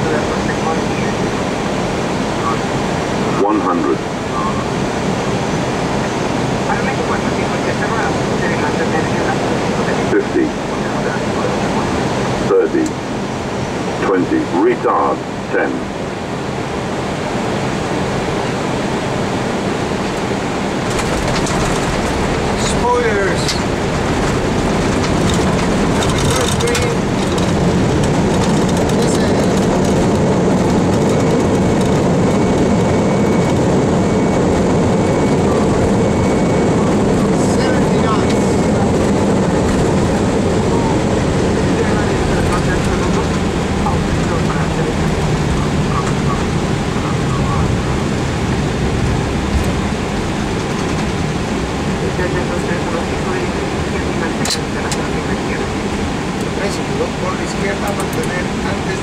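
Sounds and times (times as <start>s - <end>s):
jet engines rumbling: 0.0s - 59.0s.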